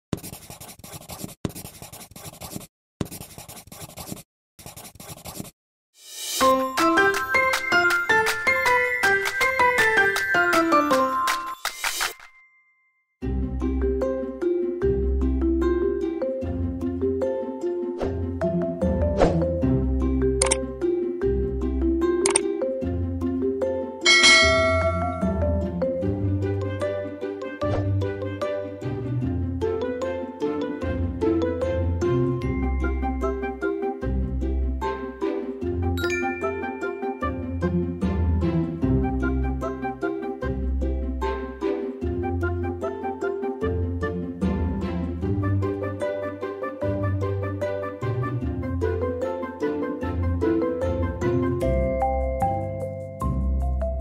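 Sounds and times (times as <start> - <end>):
marker scribbling on paper: 0.1 - 5.5
light music with plucked notes: 6.4 - 11.7, 13.2 - 54.0
notification bell chime: 24.0 - 25.9, 36.0 - 37.4.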